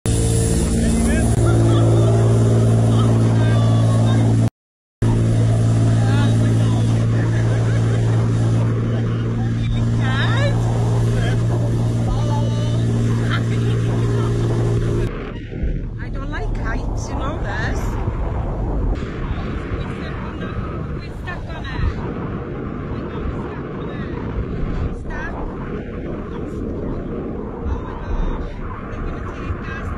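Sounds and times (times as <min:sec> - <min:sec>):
boat engine droning: 0:00.0 - 0:29.9
wind fluttering on microphone: 0:00.1 - 0:29.9.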